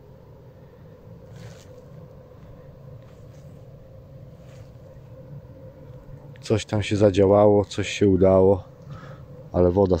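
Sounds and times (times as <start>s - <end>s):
faint hum: 0.0s - 10.0s
low steady rumble: 0.0s - 10.0s
soft rustle: 1.2s - 5.2s.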